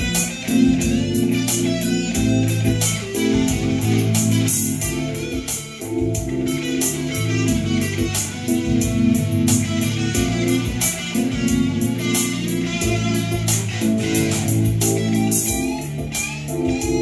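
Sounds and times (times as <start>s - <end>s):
drums keeping time: 0.0s - 17.0s
jazz electric guitar: 0.0s - 17.0s
walking bass line: 0.0s - 17.0s.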